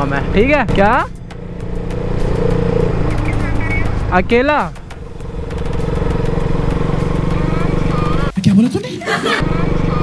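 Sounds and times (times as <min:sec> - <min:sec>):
motorcycle engine running: 0:00.0 - 0:08.4, 0:09.4 - 0:10.0.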